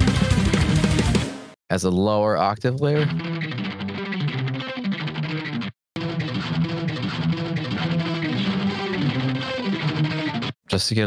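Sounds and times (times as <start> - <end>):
distorted electric guitar riff: 0.0 - 1.4, 2.8 - 10.6.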